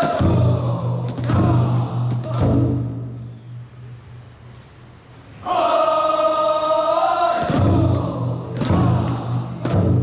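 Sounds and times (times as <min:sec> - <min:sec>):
group chanting: 0:00.0 - 0:03.2, 0:05.4 - 0:10.0
crickets chirping: 0:00.0 - 0:10.0.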